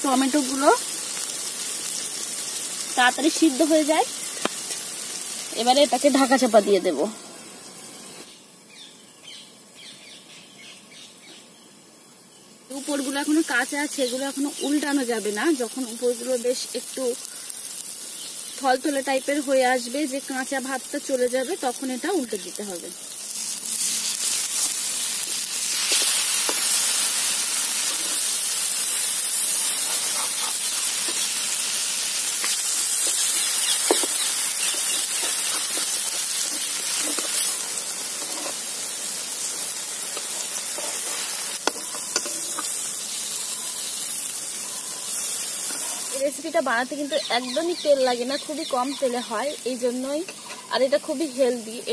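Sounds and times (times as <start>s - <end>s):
food frying in a pan: 0.0s - 8.7s, 11.3s - 51.9s
bird chirping: 7.9s - 12.5s, 33.2s - 35.5s, 41.7s - 45.2s, 47.0s - 49.2s
metal spatula scraping pan: 33.8s - 38.6s, 40.2s - 42.8s.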